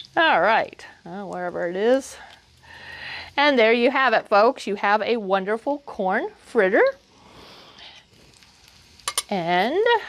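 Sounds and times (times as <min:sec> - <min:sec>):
hot oil sizzling and crackling: 0:00.0 - 0:10.0.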